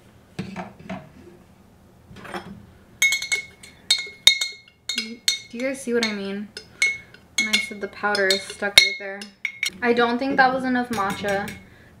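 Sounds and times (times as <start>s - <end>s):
spoon clinking in glass jar: 3.0s - 9.7s.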